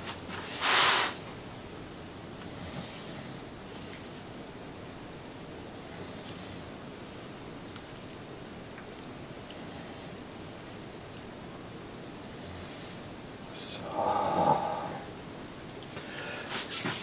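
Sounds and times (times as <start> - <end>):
faint background hiss: 0.0 - 17.0.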